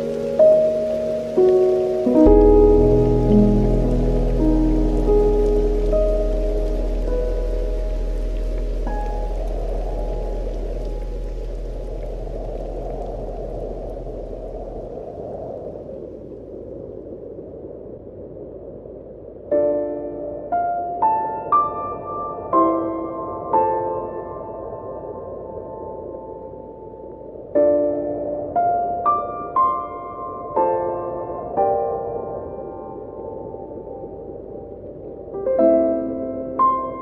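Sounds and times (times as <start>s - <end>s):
calm instrumental music: 0.0s - 12.4s
steady rain: 0.0s - 37.0s.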